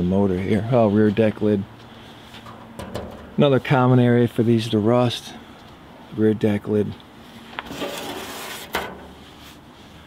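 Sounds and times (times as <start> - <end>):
rustle of handling: 6.8 - 10.0.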